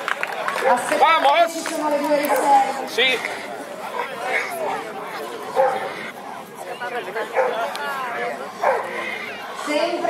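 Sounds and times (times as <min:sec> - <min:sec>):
crowd chatter: 0:00.0 - 0:10.0
dogs barking: 0:00.6 - 0:01.0, 0:05.2 - 0:06.2, 0:06.8 - 0:09.9.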